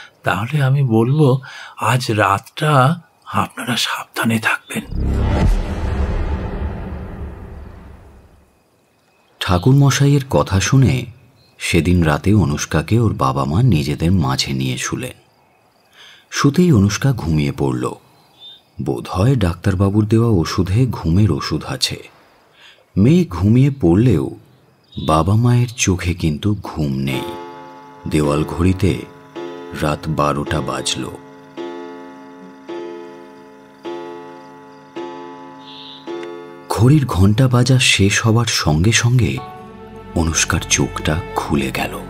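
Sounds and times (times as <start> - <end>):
faint crickets chirping: 0.0 - 42.0
narrator speaking: 0.3 - 5.2, 25.0 - 27.4, 28.0 - 29.2, 29.8 - 31.2, 36.7 - 42.0
clock chime strokes: 26.9 - 37.2.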